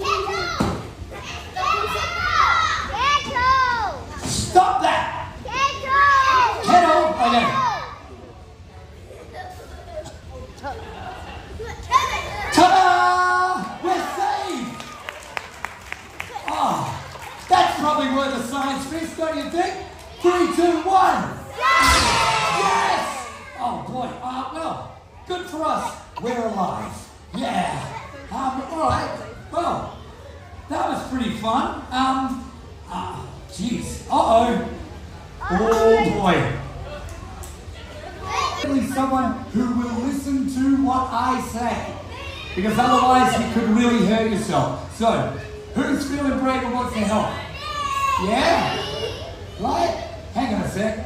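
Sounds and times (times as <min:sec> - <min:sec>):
children shouting excitedly: 0:00.0 - 0:04.3, 0:05.3 - 0:08.1, 0:11.5 - 0:15.3, 0:20.0 - 0:23.9, 0:37.8 - 0:38.8, 0:42.0 - 0:43.7, 0:47.4 - 0:50.3
people talking and shouting: 0:00.0 - 0:51.0.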